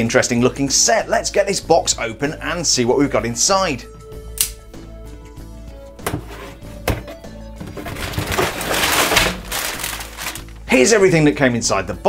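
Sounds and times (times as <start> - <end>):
background music: 0.0 - 12.0
rustle of cardboard and bagged parts: 7.6 - 10.7
cardboard seals snapping: 7.8 - 10.6.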